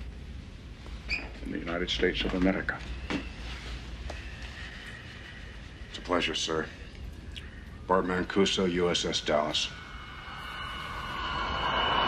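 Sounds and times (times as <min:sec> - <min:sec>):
faint high steady tone: 0:06.0 - 0:12.0
torpedo rushing noise: 0:08.8 - 0:12.0.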